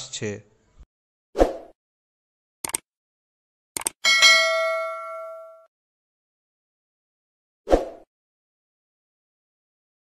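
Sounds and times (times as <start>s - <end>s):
notification bell ding: 4.1s - 5.7s.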